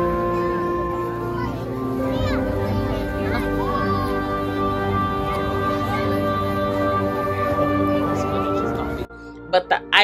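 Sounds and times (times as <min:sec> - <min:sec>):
children playing and calling out: 0:00.0 - 0:08.5
waltz music: 0:00.0 - 0:09.8.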